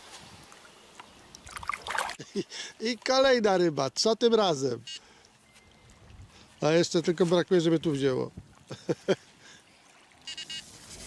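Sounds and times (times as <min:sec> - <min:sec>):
bite alarm high-pitched beeps: 0:10.3 - 0:10.7.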